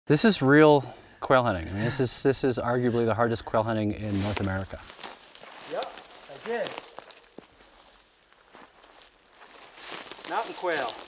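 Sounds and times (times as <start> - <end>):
footsteps through dry underbrush: 4.0 - 11.0
rustle of underbrush: 4.0 - 11.0.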